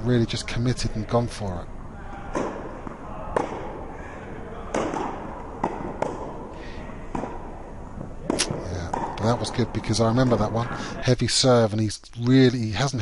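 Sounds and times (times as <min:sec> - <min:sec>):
tennis ball knocking: 0:04.7 - 0:06.5, 0:07.1 - 0:10.5.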